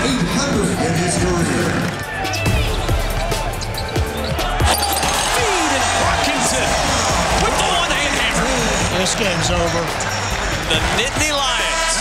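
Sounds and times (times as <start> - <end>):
arena crowd noise: 0.0 - 12.0
background music: 0.0 - 12.0.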